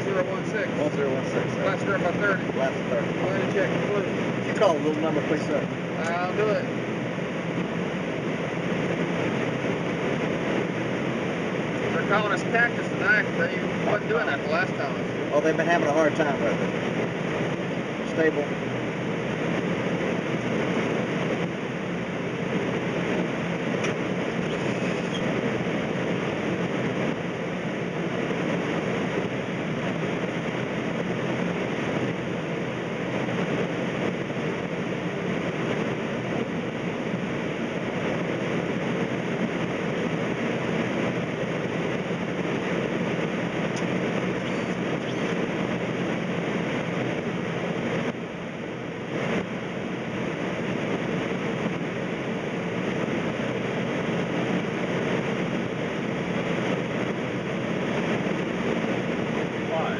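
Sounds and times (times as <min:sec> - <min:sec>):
aircraft engine noise: 0:00.0 - 0:59.9
airflow over aircraft: 0:00.0 - 0:59.9.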